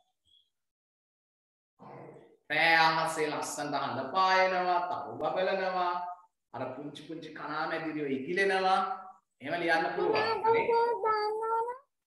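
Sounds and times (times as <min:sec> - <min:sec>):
person talking: 0:01.8 - 0:11.8.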